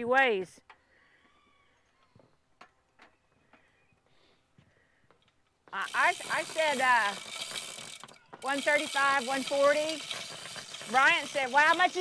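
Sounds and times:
person speaking: 5.7 - 7.2, 10.9 - 12.0.

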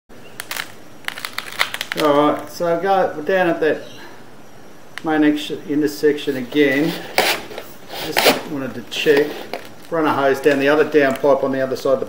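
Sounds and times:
sharp clicks and crackles: 0.2 - 2.5, 9.1 - 11.4
steady hiss: 0.4 - 12.0.

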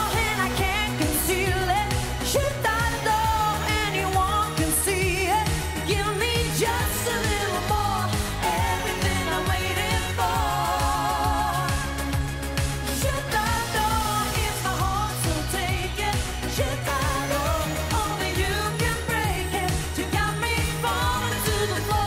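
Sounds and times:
woman singing into microphone: 0.0 - 12.1, 12.8 - 22.0
dance-pop backing track: 0.0 - 22.0.

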